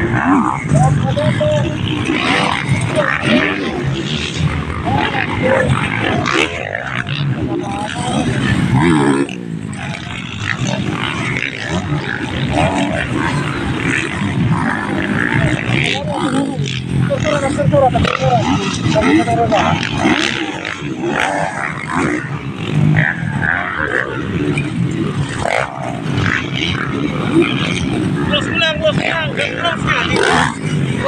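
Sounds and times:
dirt bike engines revving: 0.0s - 31.0s
people's voices: 0.0s - 31.0s.

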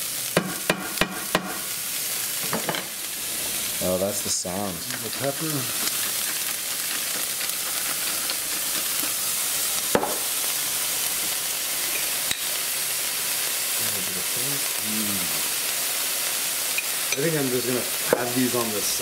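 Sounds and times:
mushrooms sizzling in skillet: 0.0s - 19.0s.

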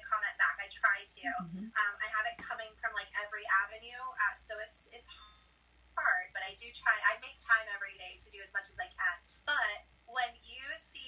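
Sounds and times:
woman talking through small speaker: 0.0s - 4.7s, 6.0s - 11.0s.

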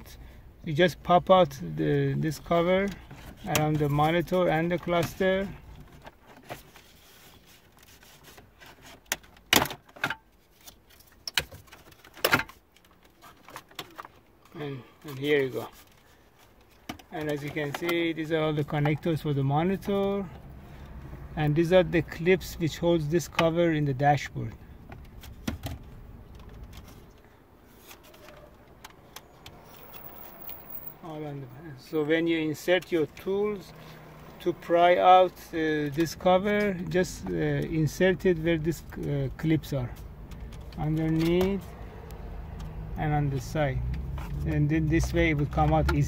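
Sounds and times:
plastic trim clicks and rustles: 8.2s - 20.5s, 24.8s - 30.8s.

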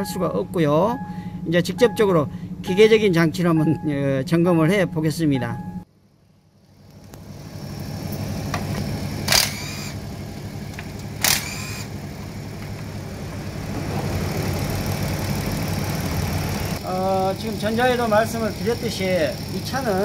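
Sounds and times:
car engine idling: 5.9s - 20.0s.

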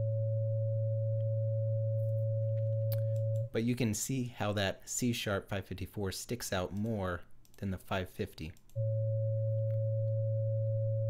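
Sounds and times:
steady sine tones: 0.0s - 3.5s, 8.8s - 11.0s.

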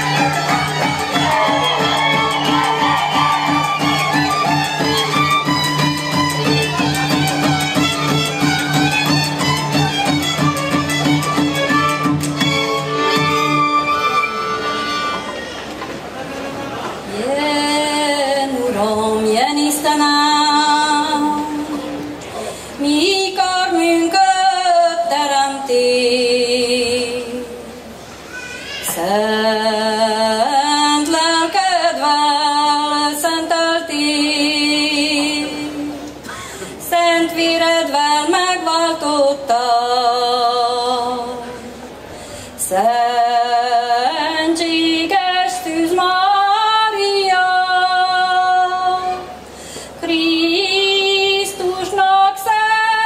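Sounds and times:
person singing unaccompanied: 0.0s - 13.7s, 28.9s - 36.1s, 36.8s - 41.6s, 42.6s - 49.4s, 50.0s - 53.0s
woman singing unaccompanied folk song: 17.1s - 27.8s, 28.8s - 41.8s, 42.6s - 53.0s.

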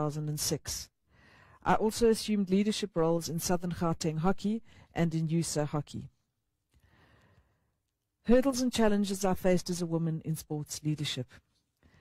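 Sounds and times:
faint soft breath: 1.1s - 1.6s, 6.8s - 7.8s, 11.8s - 12.0s.

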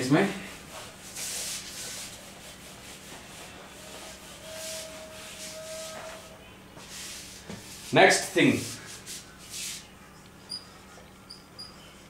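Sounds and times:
eraser wiping whiteboard: 0.5s - 9.9s.

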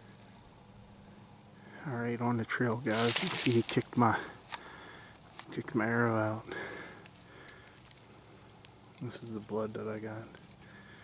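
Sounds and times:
dry leaves rustling underfoot: 2.8s - 4.2s, 6.6s - 11.0s
soft crackles: 2.8s - 5.7s, 6.3s - 11.0s.

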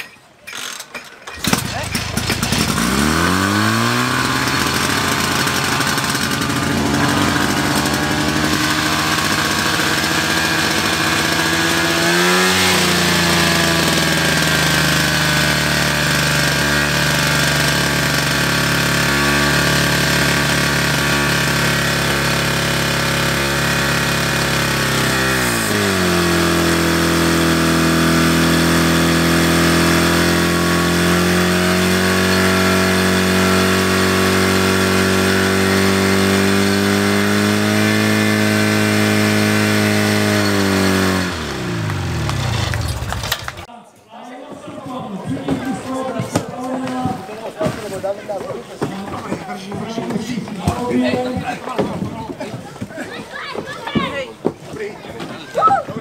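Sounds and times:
fire pump engine running hard: 1.4s - 43.7s.

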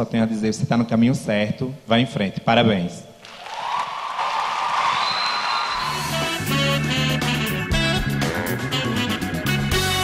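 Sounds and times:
studio audience applauding: 3.2s - 6.6s
music with bass and drum beat: 5.8s - 10.0s.

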